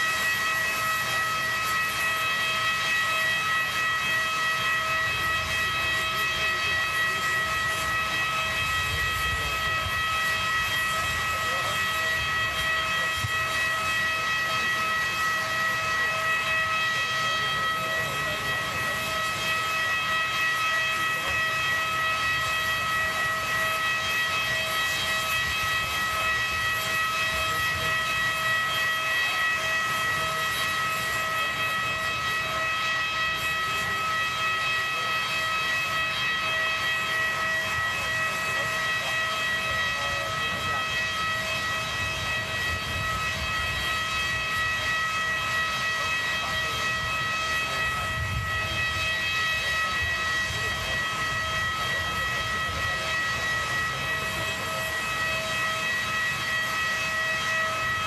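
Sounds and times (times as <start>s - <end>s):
high-pitched machine whine: 0.0s - 58.0s.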